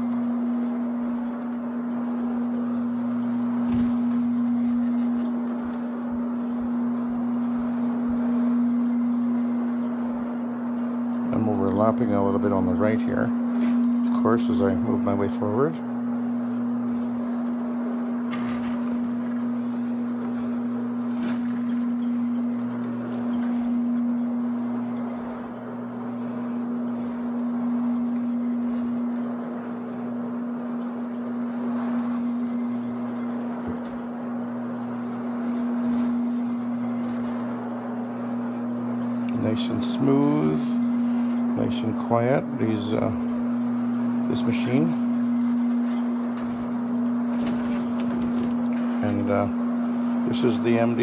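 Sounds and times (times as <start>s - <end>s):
floor machine motor hum: 0.0s - 51.0s.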